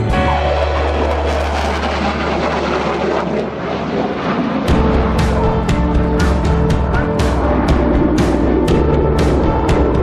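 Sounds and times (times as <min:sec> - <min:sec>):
jet aircraft roar: 0:00.0 - 0:10.0
music with drum beats: 0:04.7 - 0:10.0.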